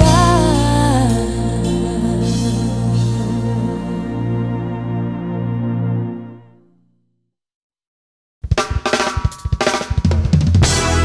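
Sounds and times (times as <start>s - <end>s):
drum kit hits: 0.0s - 3.5s, 8.5s - 11.0s
bass line: 0.0s - 6.6s, 10.6s - 11.0s
sustained band chords: 0.0s - 6.7s.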